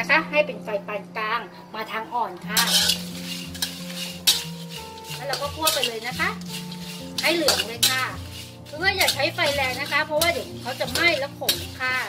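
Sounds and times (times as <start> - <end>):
spatula scraping a metal wok: 2.4 - 12.0
dried chilies rustling: 2.5 - 12.0.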